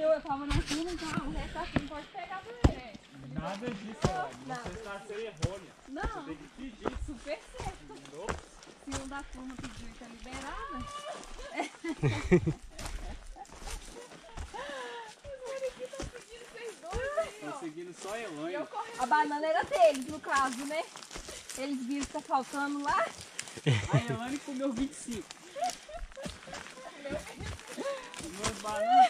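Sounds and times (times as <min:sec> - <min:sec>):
footsteps and knocks on trail: 0:00.0 - 0:29.0.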